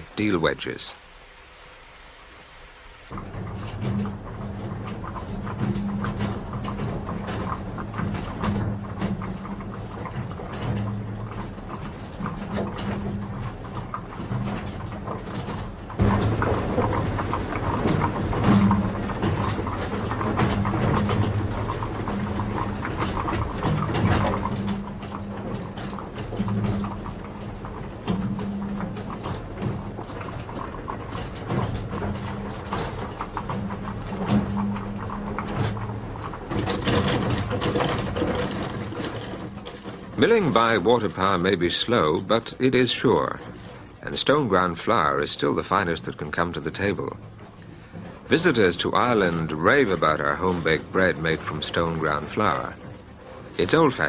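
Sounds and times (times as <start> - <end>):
low mill hum: 0.0 - 54.0.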